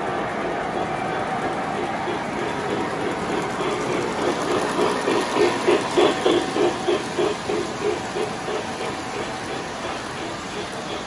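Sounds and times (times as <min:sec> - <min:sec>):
model steam locomotive chuffing: 0:00.0 - 0:11.0
model trains rumbling on track: 0:00.0 - 0:11.0.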